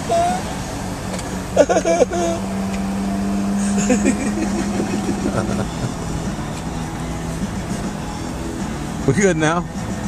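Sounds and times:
car engine rumble from inside: 0.0 - 10.0.

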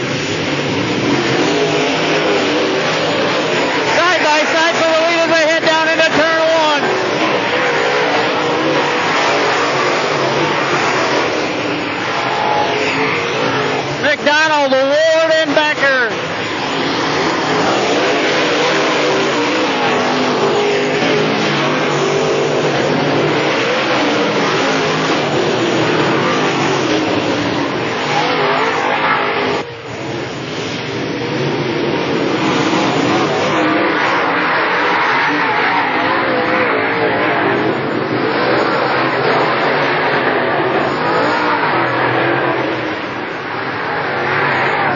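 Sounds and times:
race car engines roaring: 0.0 - 44.9.

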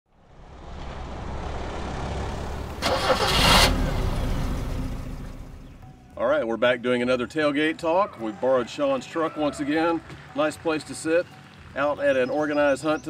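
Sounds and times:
vehicle engine surging: 0.1 - 5.9.

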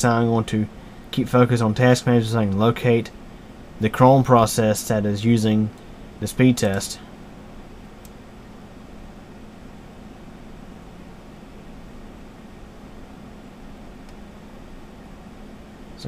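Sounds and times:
background hum and hiss: 0.0 - 16.0
faint click: 8.0 - 8.2, 14.0 - 14.2.

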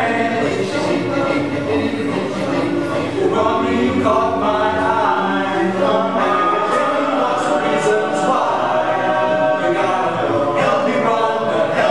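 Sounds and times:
men's chorus singing a cappella: 0.0 - 11.9.

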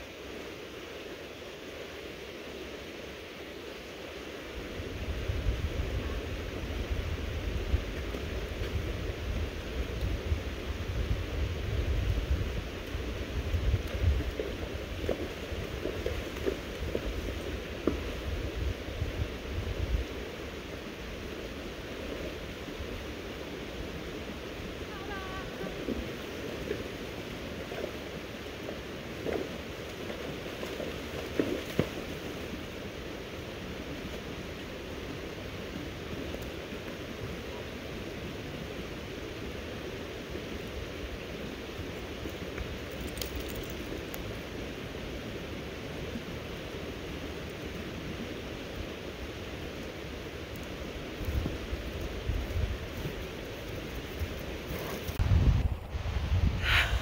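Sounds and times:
creek flowing: 0.0 - 57.0.

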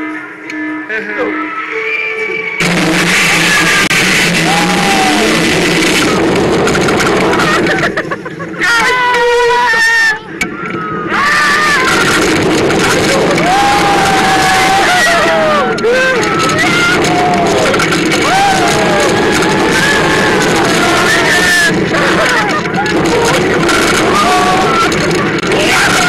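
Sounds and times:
roller coaster wind and track noise: 1.6 - 26.0
riders screaming: 2.6 - 26.0.

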